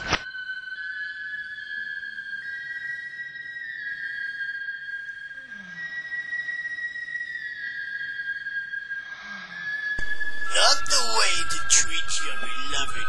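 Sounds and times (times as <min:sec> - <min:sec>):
electronic music with held notes: 0:10.0 - 0:13.0.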